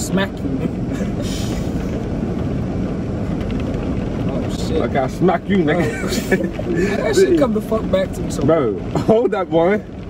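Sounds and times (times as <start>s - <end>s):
car engine rumble in cabin: 0.0s - 10.0s.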